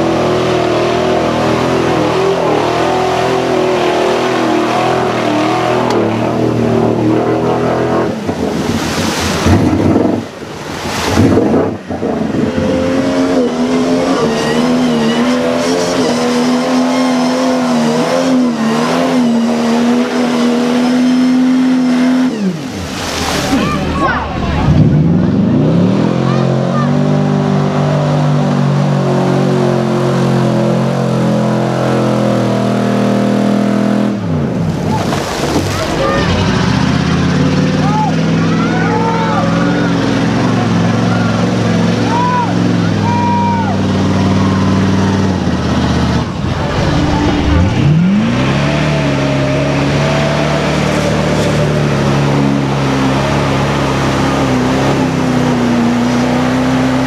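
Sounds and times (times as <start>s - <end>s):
mud and water splashing: 0.0s - 38.4s, 43.8s - 57.0s
truck engines revving: 0.0s - 57.0s.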